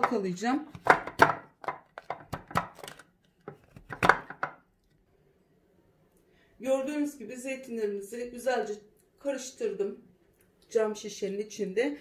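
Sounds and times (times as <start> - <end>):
plastic lid knocking on glass jar: 0.8 - 2.8, 3.8 - 4.6.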